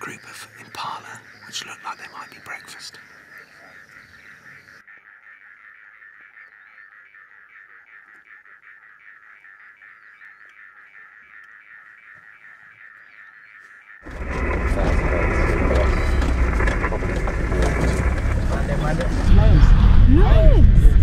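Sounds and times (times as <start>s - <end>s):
faint bird chirps: 0.0s - 14.1s
pulsing chorus of calling animals: 3.2s - 21.0s.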